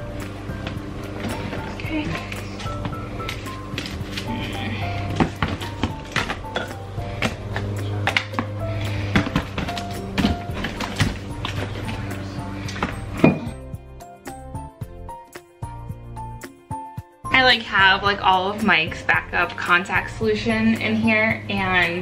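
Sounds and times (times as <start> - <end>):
background music with bass line: 0.0 - 22.0.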